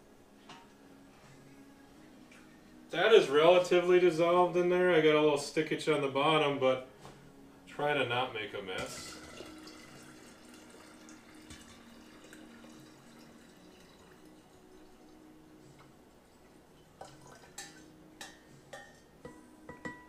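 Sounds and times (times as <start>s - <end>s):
tea trickling into glass jar: 8.9s - 15.2s, 16.4s - 17.8s.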